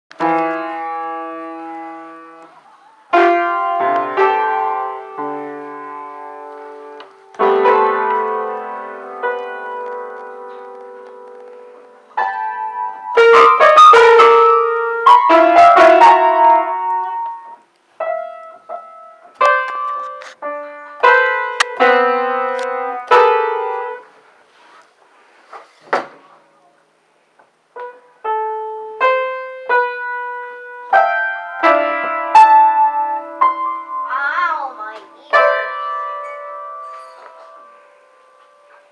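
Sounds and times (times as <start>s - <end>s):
piano keys struck at random: 0.1s - 24.2s, 27.7s - 38.9s.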